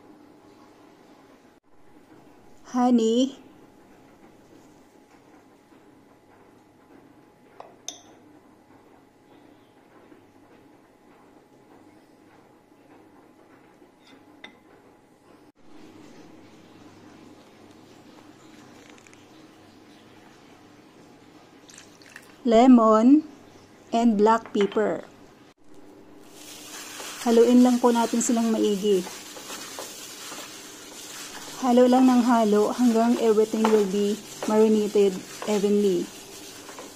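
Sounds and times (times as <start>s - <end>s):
plastic glove rustling: 26.2s - 36.9s.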